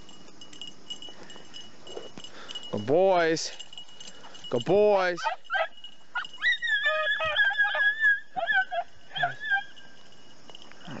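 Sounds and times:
dogs yipping: 0:05.2 - 0:10.0.

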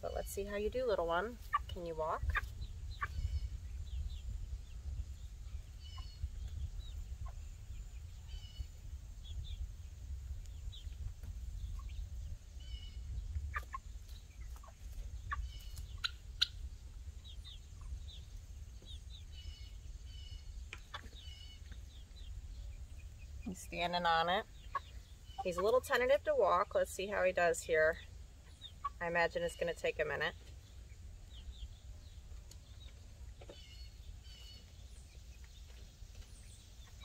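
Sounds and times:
steady low rumble: 0:00.0 - 0:37.0
chicks cheeping: 0:00.1 - 0:37.0.

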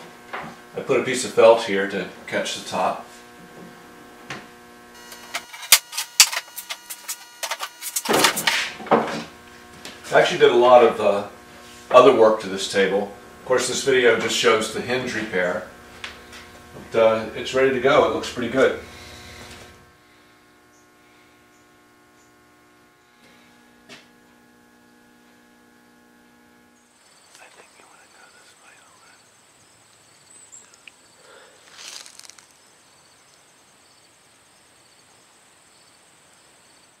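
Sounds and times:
steady low hum: 0:00.0 - 0:37.0
insect trill: 0:26.8 - 0:37.0.

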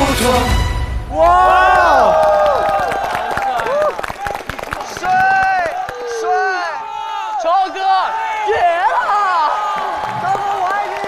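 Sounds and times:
crowd cheering and screaming: 0:01.1 - 0:11.0.

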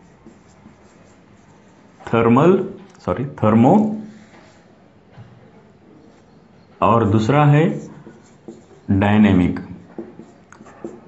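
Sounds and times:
marker writing on whiteboard: 0:00.0 - 0:03.0, 0:03.8 - 0:04.8, 0:05.7 - 0:11.0.

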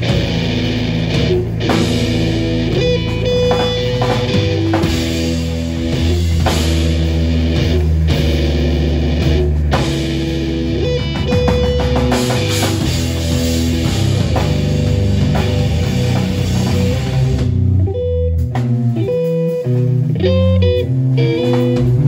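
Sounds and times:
bass guitar: 0:00.0 - 0:22.0
drum kit: 0:00.0 - 0:22.0
electric guitar: 0:00.0 - 0:22.0.

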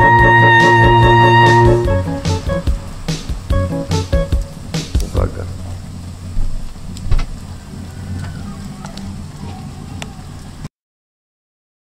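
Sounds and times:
light hiss: 0:00.0 - 0:10.7
steady low rumble: 0:00.0 - 0:10.7.

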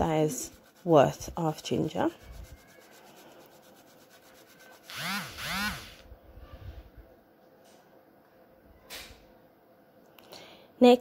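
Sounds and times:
ginger rasping on metal grater: 0:00.0 - 0:05.8.

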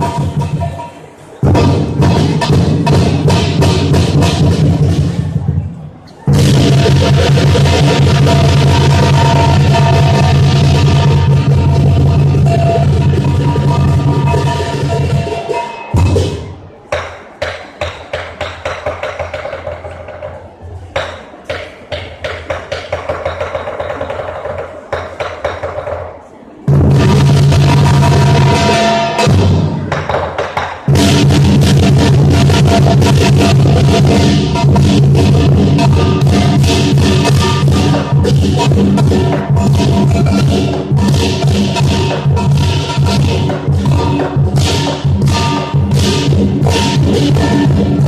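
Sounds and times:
cymbals clashing: 0:00.0 - 0:05.2, 0:06.3 - 0:20.0, 0:26.7 - 0:48.0
big drum beating: 0:00.0 - 0:20.2, 0:26.6 - 0:48.0.

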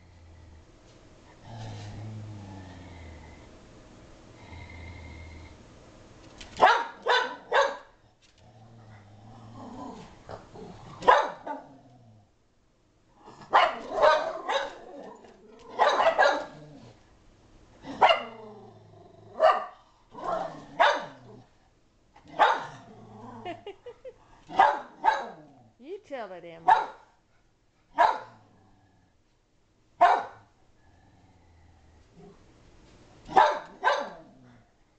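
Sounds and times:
dog barking: 0:06.6 - 0:08.0, 0:11.0 - 0:11.7, 0:13.5 - 0:14.9, 0:15.7 - 0:16.6, 0:18.0 - 0:18.4, 0:19.4 - 0:21.2, 0:22.3 - 0:22.7, 0:24.5 - 0:25.4, 0:26.6 - 0:27.1, 0:28.0 - 0:28.4, 0:30.0 - 0:30.5, 0:33.3 - 0:34.3.

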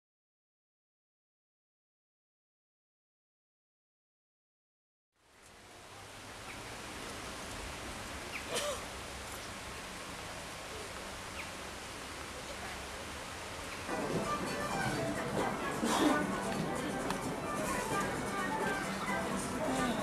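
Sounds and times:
outdoor background hiss: 0:05.2 - 0:20.0.

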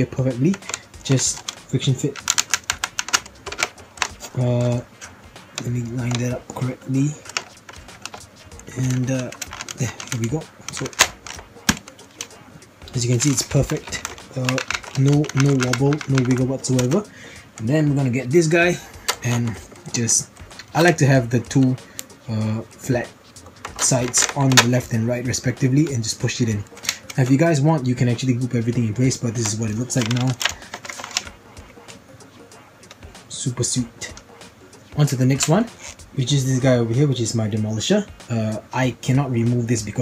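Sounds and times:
hard plastic clicking: 0:00.3 - 0:04.4, 0:05.0 - 0:18.3, 0:19.0 - 0:22.1, 0:23.4 - 0:24.9, 0:26.6 - 0:27.3, 0:29.3 - 0:31.8.

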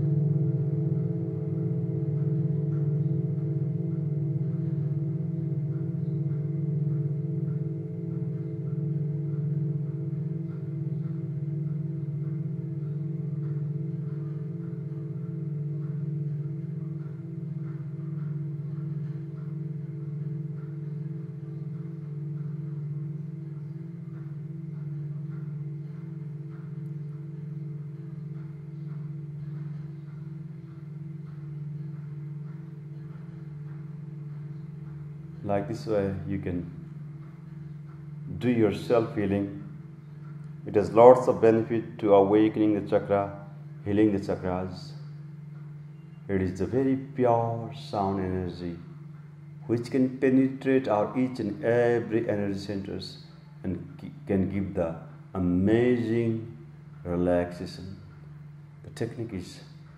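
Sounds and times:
metal singing bowls ringing: 0:00.0 - 0:54.3.

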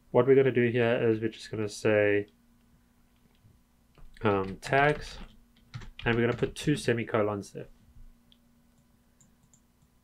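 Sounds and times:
low steady hum: 0:00.0 - 0:10.0
computer mouse clicks: 0:08.3 - 0:10.0.

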